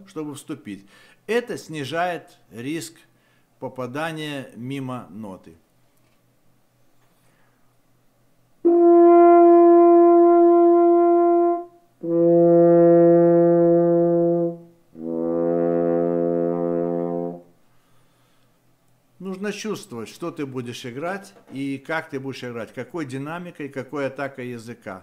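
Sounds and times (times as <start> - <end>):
french horn long notes: 8.6 - 17.6.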